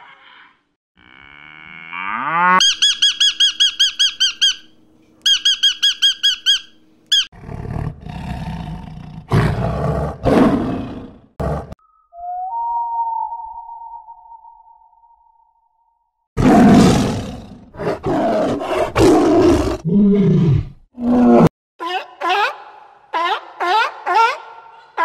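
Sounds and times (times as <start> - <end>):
lorikeet squawking: 2.6 - 7.3.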